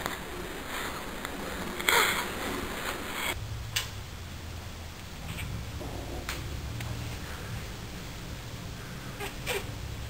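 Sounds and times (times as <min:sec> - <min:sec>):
baby squeak: 0:09.2 - 0:09.7.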